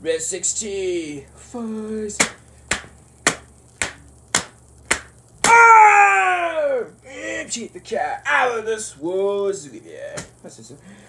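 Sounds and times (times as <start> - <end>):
sharp clicks: 2.1 - 7.1
man crying out: 5.4 - 7.4.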